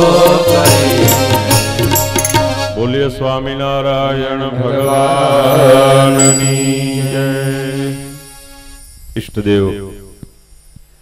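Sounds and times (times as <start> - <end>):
musical accompaniment: 0.0 - 3.3.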